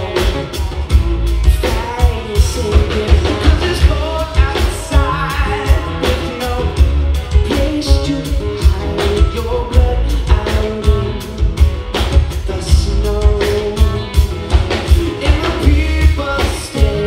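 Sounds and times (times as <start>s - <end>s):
acoustic-electric guitar: 0.0s - 17.0s
drum kit beat: 0.0s - 17.0s
heavy bass: 0.0s - 17.0s
man singing: 0.0s - 17.0s.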